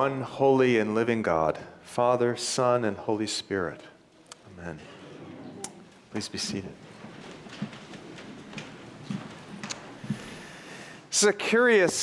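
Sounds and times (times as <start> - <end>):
clothing rustling and shuffling: 4.8 - 10.6.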